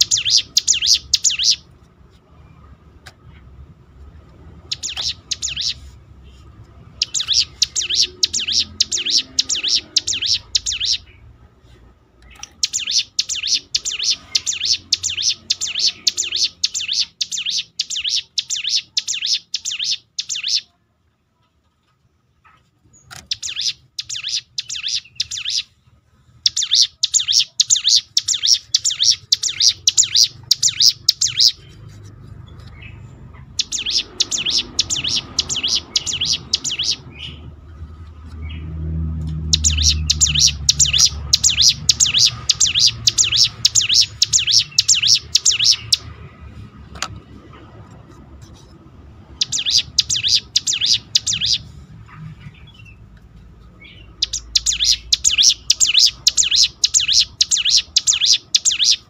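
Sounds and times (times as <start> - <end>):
bird singing high notes: 0.0 - 1.7, 4.7 - 5.9, 6.9 - 11.2, 12.3 - 20.7, 26.5 - 31.7, 32.8 - 37.4, 39.4 - 46.1, 49.3 - 51.6, 53.8 - 59.0.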